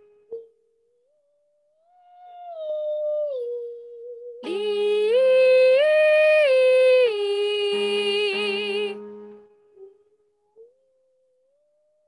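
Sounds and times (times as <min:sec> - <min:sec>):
full voice singing a long note: 0:04.4 - 0:09.1.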